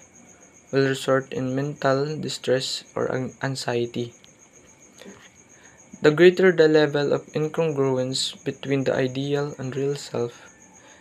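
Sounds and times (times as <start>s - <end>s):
insect trilling: 0.0s - 11.0s
person speaking: 0.7s - 4.2s, 5.9s - 10.5s.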